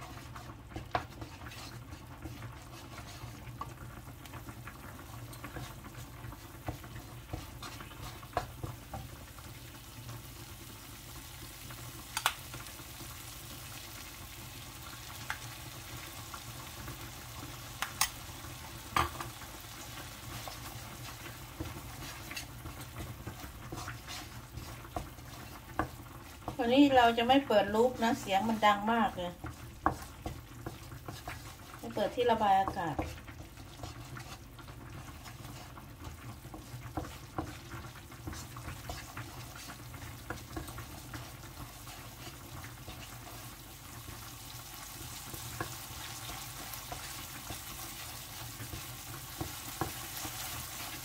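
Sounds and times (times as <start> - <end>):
wooden spatula scraping wok: 0.0 - 10.6, 15.1 - 51.0
curry paste sizzling in oil: 0.0 - 51.0.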